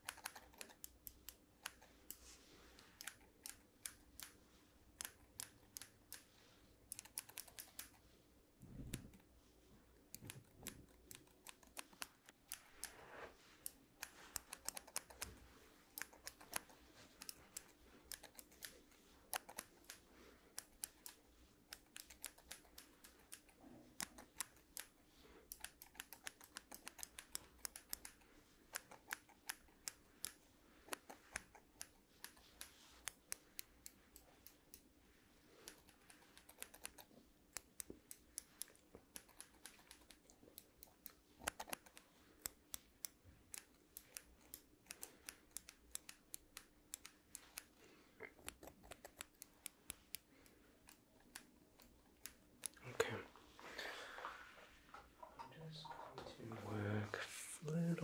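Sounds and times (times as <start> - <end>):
scissors snipping: 0.0 - 2.2, 2.8 - 4.4, 5.0 - 6.3, 6.9 - 8.0, 10.1 - 13.0, 13.6 - 34.9, 35.6 - 52.8.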